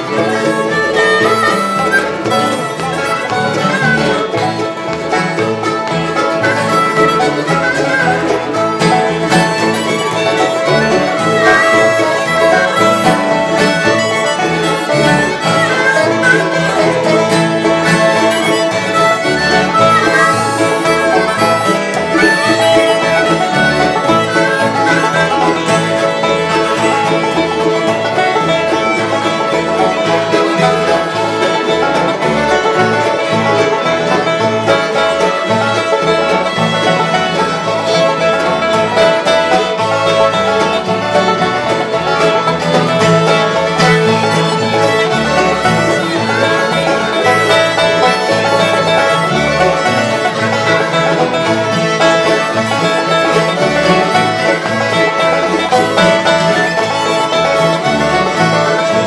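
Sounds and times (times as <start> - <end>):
acoustic guitar: 0.0 - 59.0
banjo: 0.0 - 59.0
fiddles: 0.0 - 59.0
harmonica: 0.0 - 59.0
mandolin: 0.0 - 59.0.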